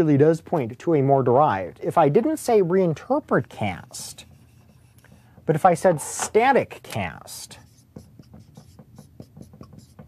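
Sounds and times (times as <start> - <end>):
marker writing on whiteboard: 3.6 - 10.0.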